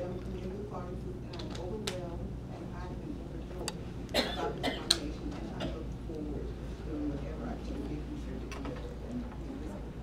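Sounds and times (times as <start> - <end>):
low room hum: 0.0 - 10.0
person coughing: 4.1 - 5.0.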